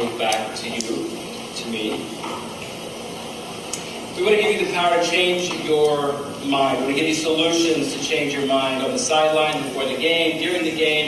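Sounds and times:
hiss of room noise: 0:00.0 - 0:11.0.

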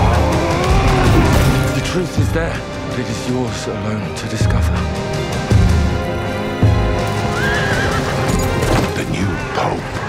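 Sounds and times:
music: 0:00.0 - 0:10.0
horse whinnying: 0:07.2 - 0:08.6.

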